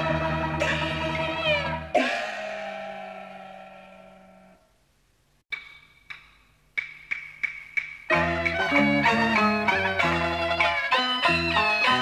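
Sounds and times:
ringing struck note: 0:02.0 - 0:04.6.

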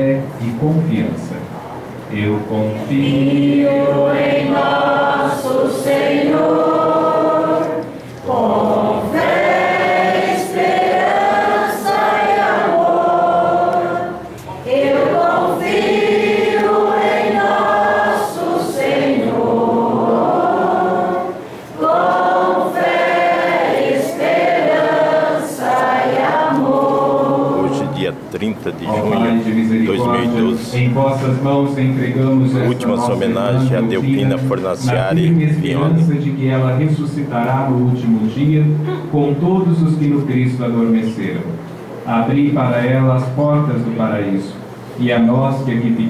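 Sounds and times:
congregation singing a hymn: 0:02.1 - 0:38.4.

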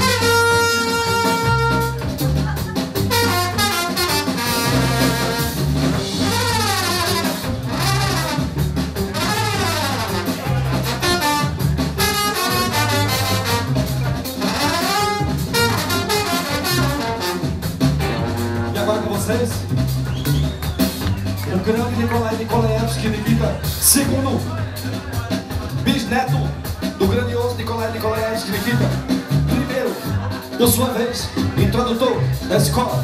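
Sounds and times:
trumpet solo: 0:00.0 - 0:02.0, 0:03.0 - 0:19.6
live band music: 0:00.0 - 0:33.0.

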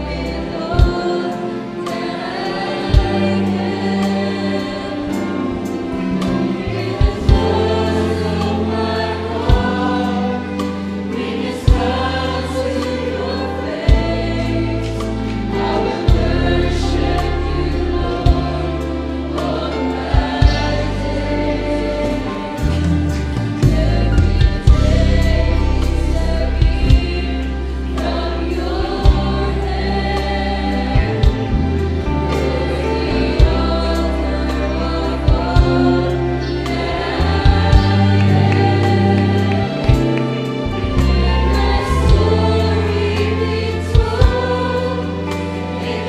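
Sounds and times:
choir singing gospel song: 0:00.0 - 0:46.0.

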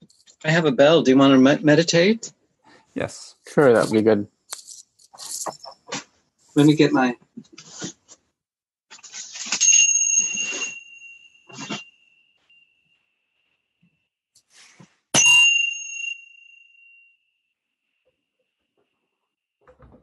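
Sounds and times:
hand bell ringing: 0:09.6 - 0:12.0, 0:15.2 - 0:17.2.

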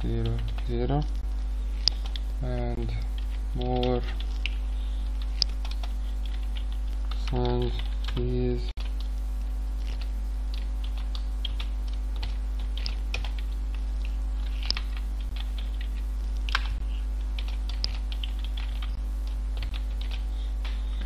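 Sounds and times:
computer keyboard typing: 0:00.0 - 0:00.9, 0:01.8 - 0:02.3, 0:02.9 - 0:09.2, 0:09.9 - 0:13.8, 0:14.4 - 0:20.8
low electrical hum: 0:00.0 - 0:21.0.

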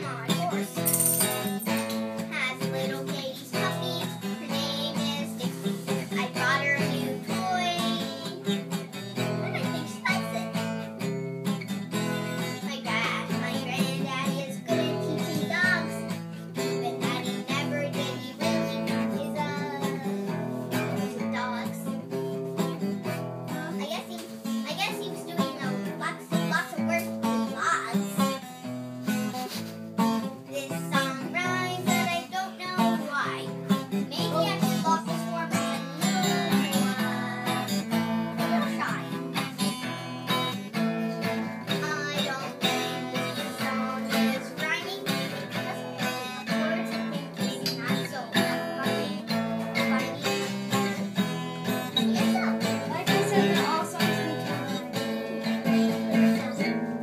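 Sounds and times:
strummed acoustic guitar music: 0:00.0 - 0:57.0.

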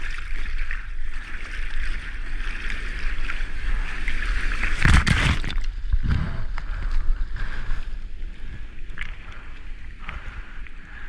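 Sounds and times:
water splash over camera: 0:00.0 - 0:07.8
low rumble: 0:03.7 - 0:11.0.

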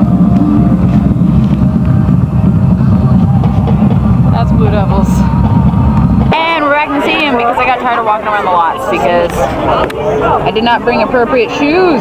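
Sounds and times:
wind buffeting microphone: 0:00.0 - 0:10.9
woman's voice: 0:06.3 - 0:09.5, 0:10.4 - 0:12.0.

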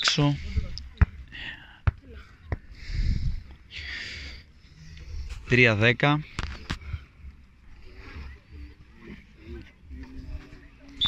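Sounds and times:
faint voices: 0:06.3 - 0:11.0.

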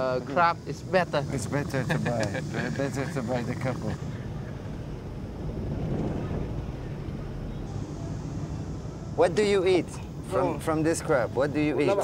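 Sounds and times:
harbour ambience rumble: 0:00.0 - 0:12.0.

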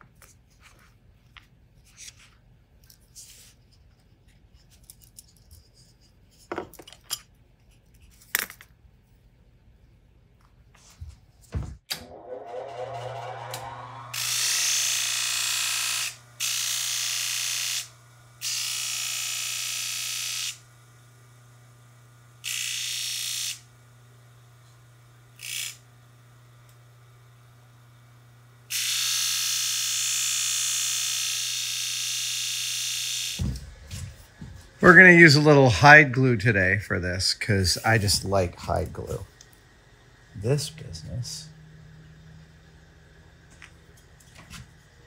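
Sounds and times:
disc sander motor humming: 0:11.9 - 0:18.8.

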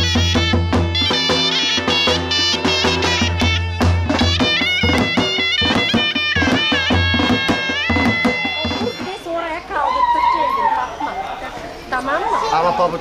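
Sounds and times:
drum beats: 0:00.0 - 0:09.7
reedy wind instrument melody: 0:00.0 - 0:12.6
crowd chatter: 0:00.0 - 0:13.0.

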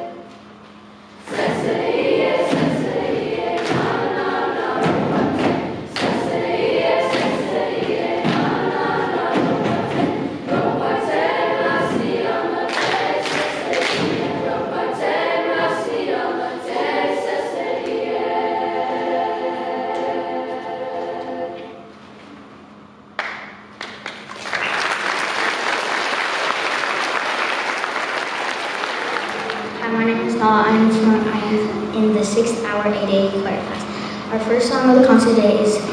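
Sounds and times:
youth choir singing: 0:00.0 - 0:00.3, 0:01.2 - 0:21.8, 0:25.5 - 0:35.9
percussive thumps: 0:02.4 - 0:03.0, 0:03.6 - 0:06.4, 0:07.0 - 0:10.9, 0:11.7 - 0:14.4.

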